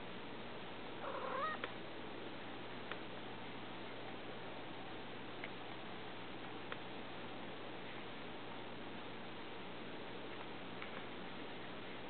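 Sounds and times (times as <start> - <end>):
cat meowing: 1.0 - 1.6.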